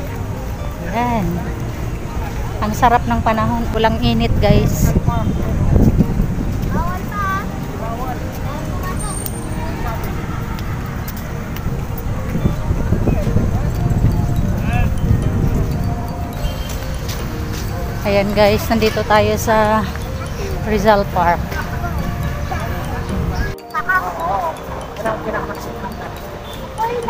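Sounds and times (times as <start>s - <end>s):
faint voices: 0.0s - 27.0s
outdoor background noise: 0.0s - 27.0s.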